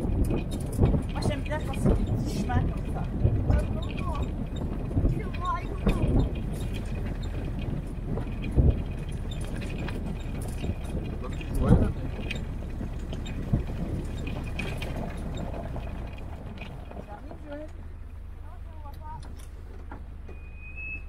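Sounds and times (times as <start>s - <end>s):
vehicle bumps and knocks: 0.0s - 21.0s
vehicle engine and running gear: 0.0s - 21.0s.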